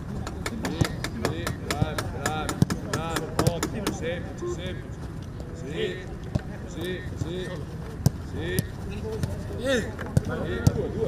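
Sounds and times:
footballs being kicked: 0.0 - 4.0, 6.2 - 11.0
players shouting calls: 5.6 - 11.0.

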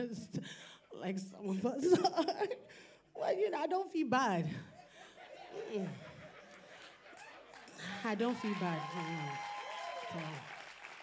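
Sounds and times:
woman speaking over microphone: 1.0 - 2.6, 3.2 - 4.6, 7.8 - 9.4
audience applauding: 6.8 - 11.0.

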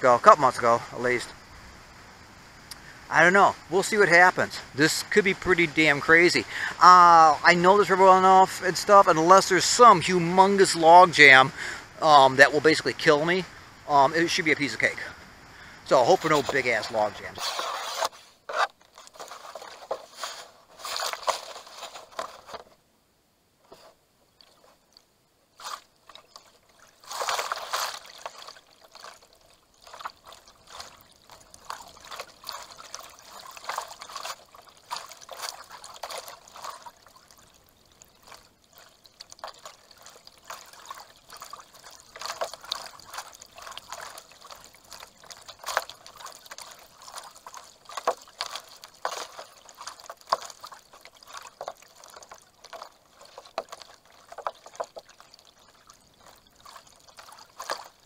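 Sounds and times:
water trickling and lapping: 0.0 - 22.8, 23.6 - 58.0
paddle strokes splashing: 2.7 - 22.8, 23.6 - 58.0.

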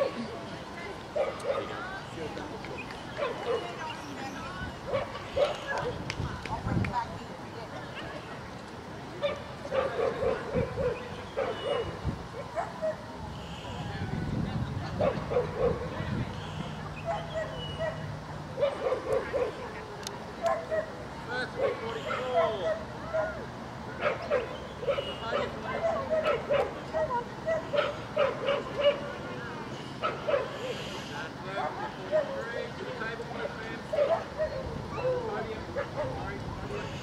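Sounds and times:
murmur of voices: 0.0 - 37.0.

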